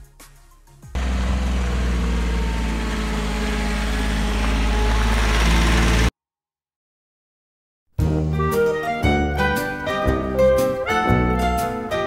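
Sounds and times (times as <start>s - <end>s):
cart engine running: 1.0s - 6.1s.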